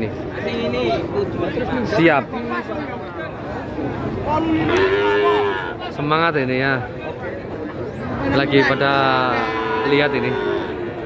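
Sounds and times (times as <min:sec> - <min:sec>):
calf mooing: 0:09.2 - 0:10.9.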